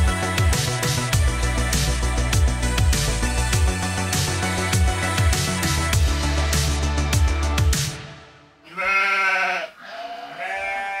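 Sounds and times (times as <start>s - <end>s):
goat bleating: 8.6s - 11.0s.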